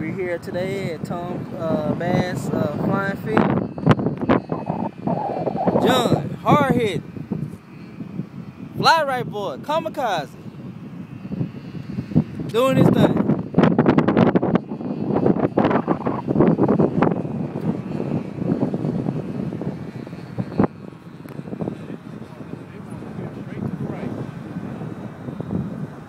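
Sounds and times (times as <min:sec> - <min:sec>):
wind buffeting microphone: 0:00.0 - 0:26.0
model airplane motor droning: 0:01.1 - 0:26.0.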